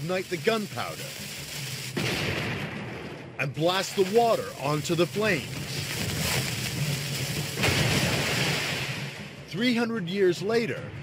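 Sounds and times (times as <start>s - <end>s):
rush of water: 0.0s - 2.0s, 3.7s - 9.4s.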